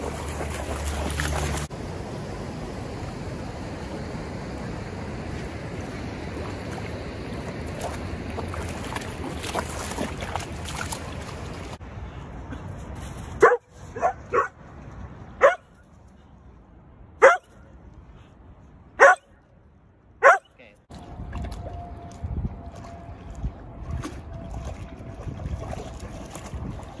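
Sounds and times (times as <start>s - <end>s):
steady low rush of noise: 1.6s - 8.7s
dog barking: 13.4s - 14.6s, 15.4s - 15.7s, 17.2s - 17.6s, 19.0s - 19.3s, 20.2s - 20.5s.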